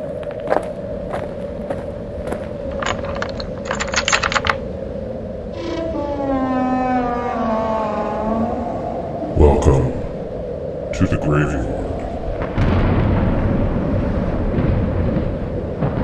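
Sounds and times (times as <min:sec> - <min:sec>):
brief rattle: 0:02.7 - 0:04.6
scattered clicks: 0:02.7 - 0:04.6
long tone gliding down in pitch: 0:05.6 - 0:09.4.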